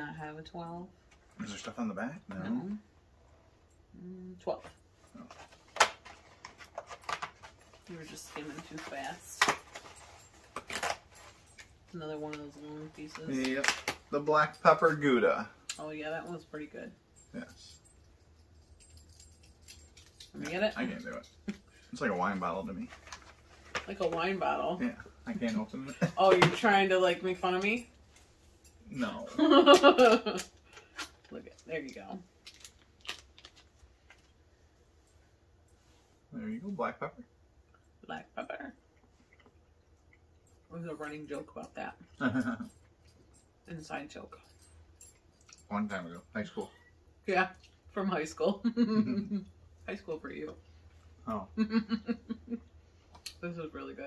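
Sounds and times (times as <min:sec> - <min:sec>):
wrapper crinkling: 0:32.4 - 0:34.3
person laughing: 0:42.2 - 0:42.7, 0:48.8 - 0:49.5.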